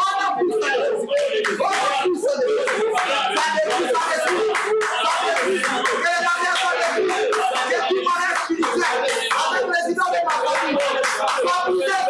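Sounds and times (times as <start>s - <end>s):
people praying aloud together: 0.0s - 12.0s
hand clapping: 0.2s - 12.0s.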